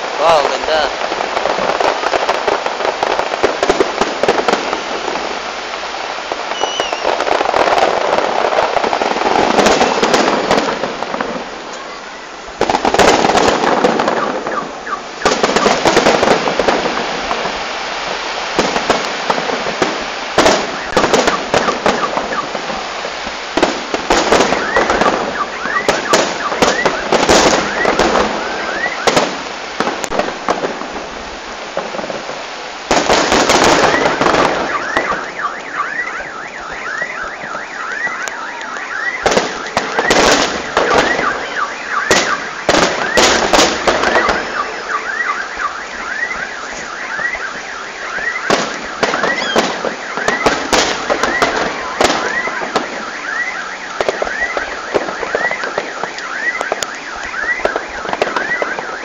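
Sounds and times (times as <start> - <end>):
fireworks bangs and crackle: 0.0 - 59.0.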